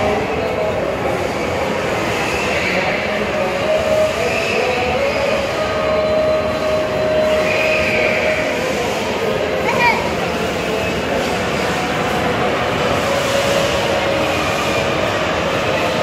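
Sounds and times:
shopping mall hubbub: 0.0 - 16.0.

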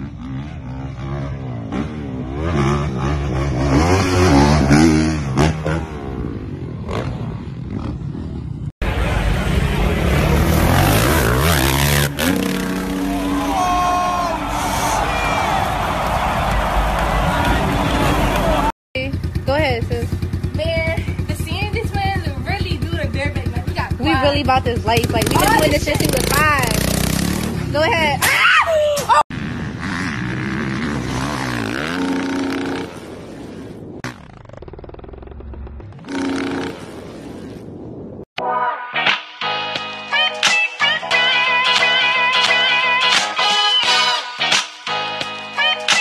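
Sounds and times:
dirt bike engine revving: 0.0 - 28.2, 29.3 - 37.7
voices: 16.9 - 26.8.

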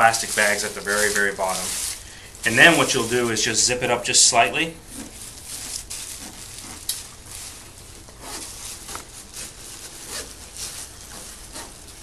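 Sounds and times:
plastic bag crinkling: 0.0 - 12.0
zipper being pulled: 8.2 - 11.8.

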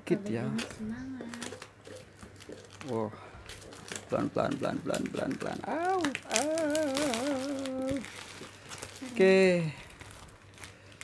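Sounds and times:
packaging crinkling: 0.6 - 11.0.

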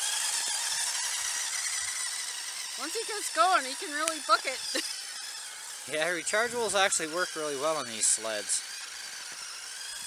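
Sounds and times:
small electric motor whine: 0.0 - 10.0.

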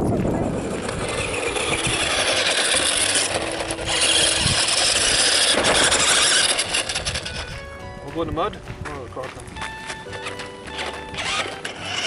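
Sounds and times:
toy car driving over gravel: 0.0 - 12.0.

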